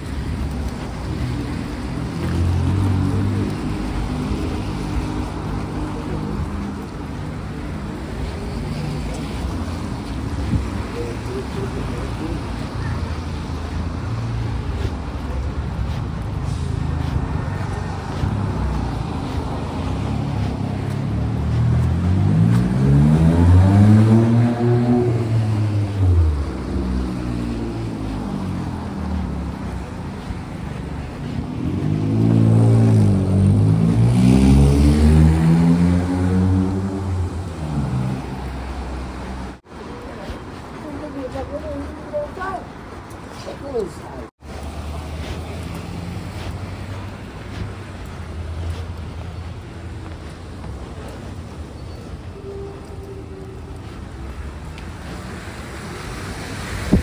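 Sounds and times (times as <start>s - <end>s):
tyres hissing on wet road: 0.0s - 57.0s
vehicle passing loudly: 1.0s - 40.6s.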